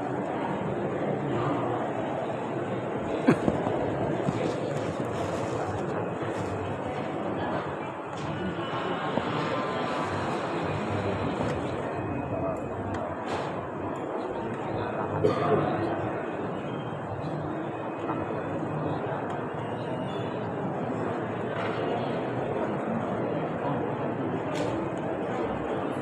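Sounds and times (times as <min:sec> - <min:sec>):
murmur of men's voices: 0:00.1 - 0:19.7.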